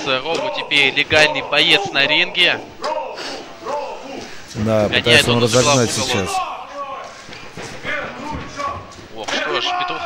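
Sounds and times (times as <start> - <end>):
faint voices echoing in a hall: 0.0 - 10.0.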